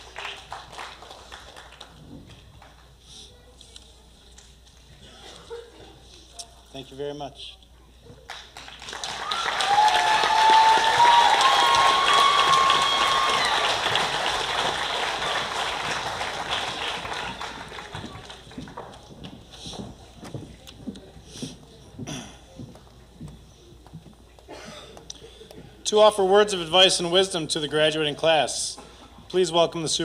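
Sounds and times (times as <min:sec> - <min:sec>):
audience applause: 0:00.0 - 0:02.1, 0:08.3 - 0:19.2
shouted cheers: 0:09.2 - 0:14.2.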